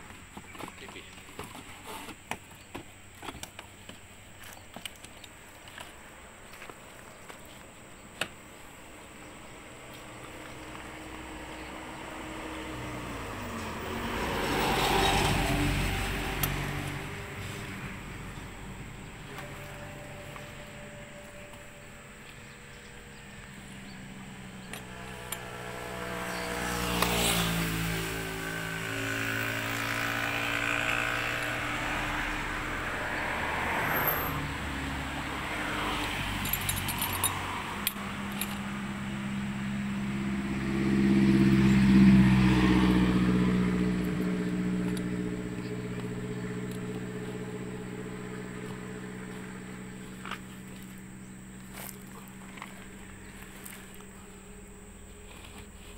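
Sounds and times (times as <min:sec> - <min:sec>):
vehicles driving past: 0:00.0 - 0:55.9.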